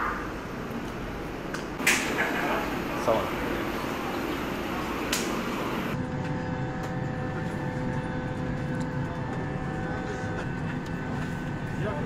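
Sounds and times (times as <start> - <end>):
airliner cabin hum: 0.0 - 12.0.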